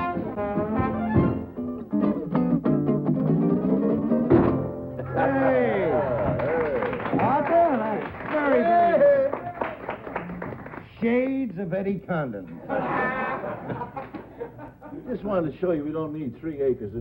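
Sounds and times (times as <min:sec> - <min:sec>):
men laughing and exclaiming: 0:05.0 - 0:06.9, 0:12.6 - 0:15.3
man clapping hands: 0:06.2 - 0:08.6, 0:09.2 - 0:10.8.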